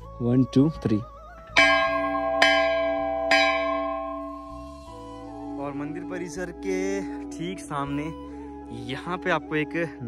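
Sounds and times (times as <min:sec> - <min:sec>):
large temple bell ringing: 0:01.6 - 0:06.1.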